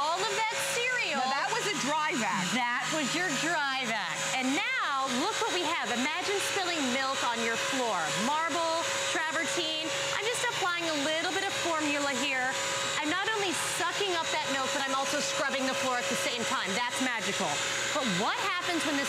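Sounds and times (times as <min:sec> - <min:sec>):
vacuum motor whine: 0:00.0 - 0:19.0.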